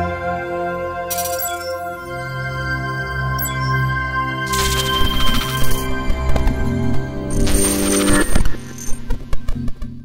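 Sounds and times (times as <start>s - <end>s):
electronic intro music: 1.1s - 9.3s.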